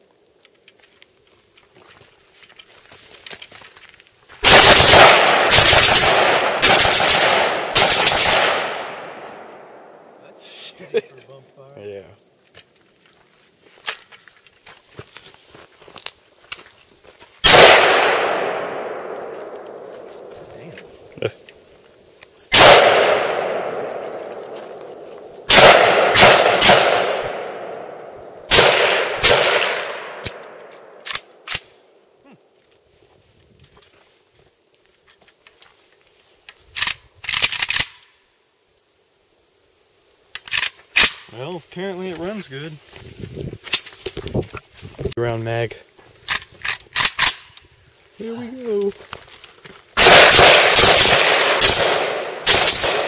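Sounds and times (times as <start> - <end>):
rifle shots with echo: 4.4 - 10.1, 17.4 - 20.4, 22.5 - 31.7, 50.0 - 53.0.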